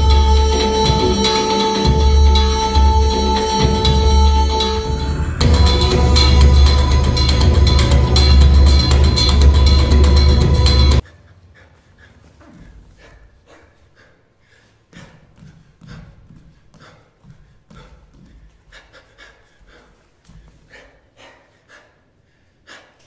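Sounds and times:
loud music with heavy bass: 0.0s - 11.0s
person panting heavily: 11.0s - 23.0s.

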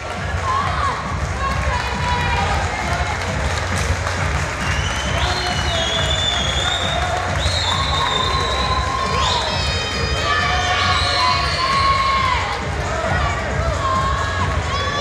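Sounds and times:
crowd shouting and cheering: 0.0s - 15.0s.

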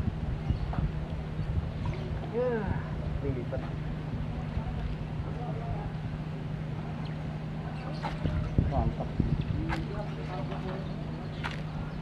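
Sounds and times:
distant voices: 0.0s - 12.0s
steady low hum: 0.0s - 12.0s.

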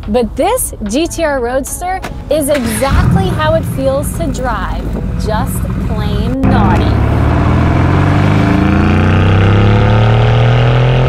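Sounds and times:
car engine accelerating: 2.5s - 11.0s.

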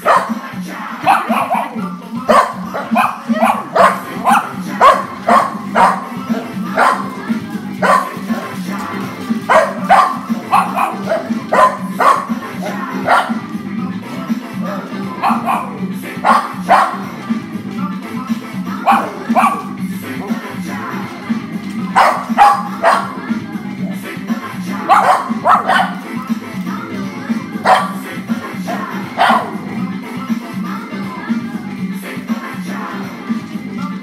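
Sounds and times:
dogs barking: 0.0s - 13.6s, 14.2s - 30.4s
music playing: 0.0s - 34.0s.

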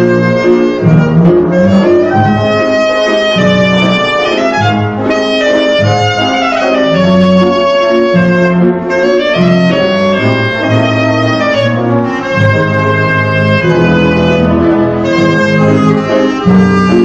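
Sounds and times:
band accompaniment with bass line: 0.0s - 17.0s
clarinet solo with slides: 0.0s - 17.0s.

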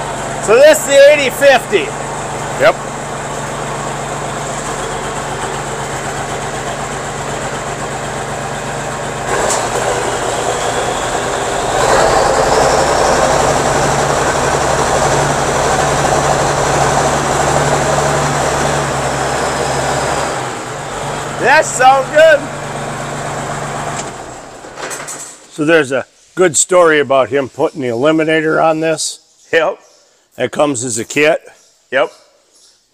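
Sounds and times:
tractor diesel engine revving: 0.0s - 25.1s.

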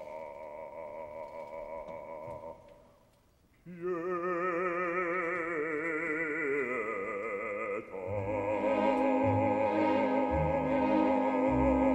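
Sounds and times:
operatic bass voice singing: 3.7s - 11.9s.

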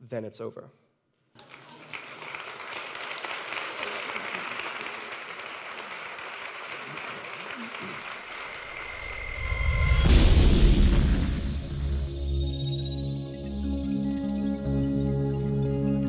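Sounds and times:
audience applauding: 1.4s - 9.5s
steady high tones: 7.7s - 16.0s.

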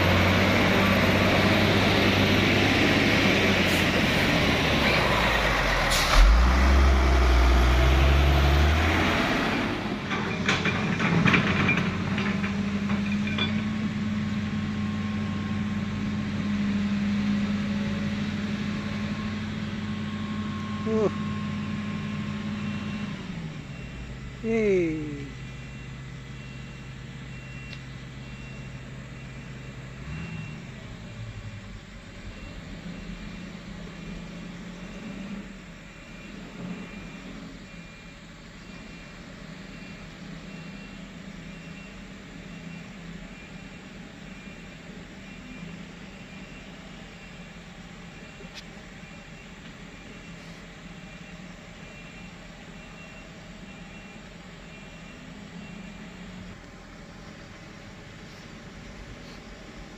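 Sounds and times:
bus diesel engine running: 0.0s - 59.9s.

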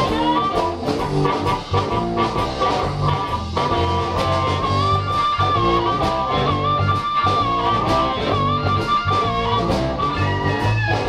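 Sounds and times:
bending electric guitar note: 0.0s - 11.0s
electric blues band playing: 0.0s - 11.0s.

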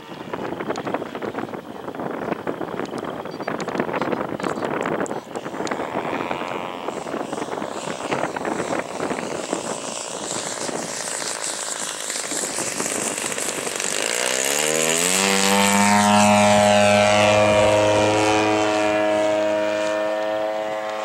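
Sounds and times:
model plane engine droning: 0.0s - 21.0s.

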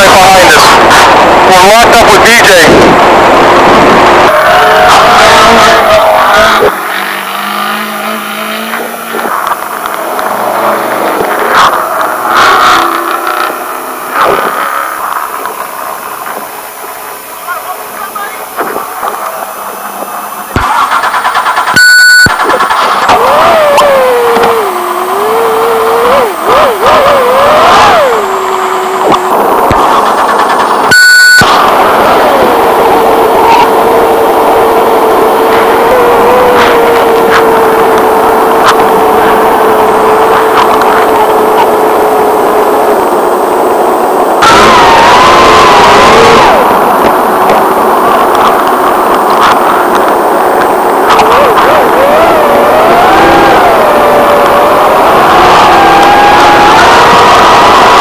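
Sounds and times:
electronic tone bursts: 0.0s - 58.0s
truck engine revving: 0.0s - 58.0s.

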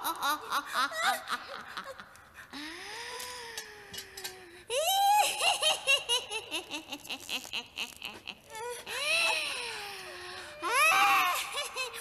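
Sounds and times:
woman crying out: 8.5s - 12.0s.

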